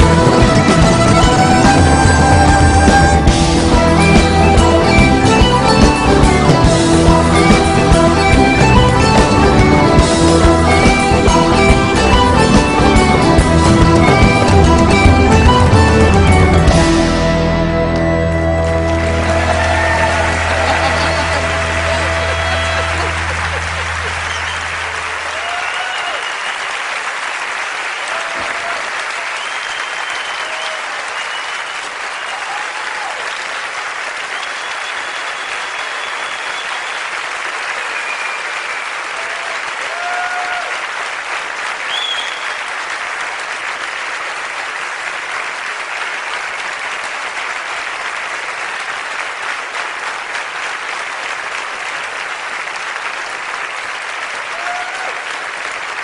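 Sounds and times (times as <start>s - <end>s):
audience applauding and cheering: 0.0s - 56.0s
whoops and whistles: 25.3s - 26.7s, 29.3s - 32.6s, 34.4s - 37.1s, 41.9s - 42.6s.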